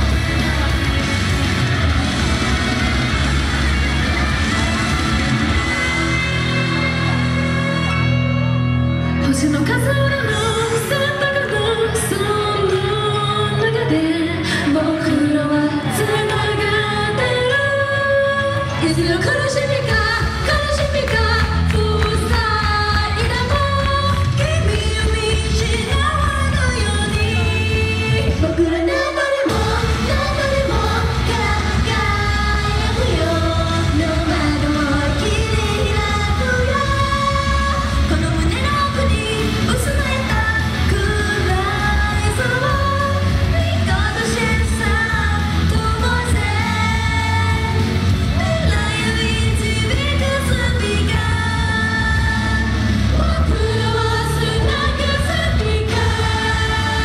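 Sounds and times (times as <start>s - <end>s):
heavy bass beat: 0.0s - 7.2s
pop song over sound system: 0.0s - 57.0s
female voices singing: 9.3s - 57.0s.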